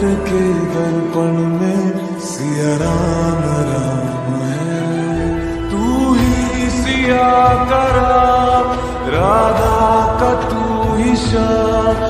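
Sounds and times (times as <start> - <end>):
person singing devotional song: 0.0 - 12.0.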